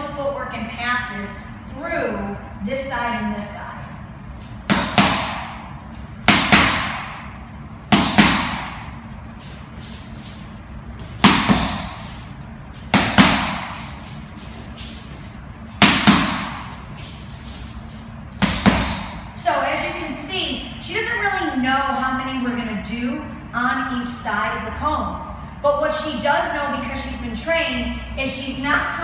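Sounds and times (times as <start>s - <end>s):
boxing gloves striking mitts: 4.6s - 9.0s, 11.0s - 12.2s, 12.8s - 14.0s, 15.1s - 16.8s, 18.4s - 19.3s.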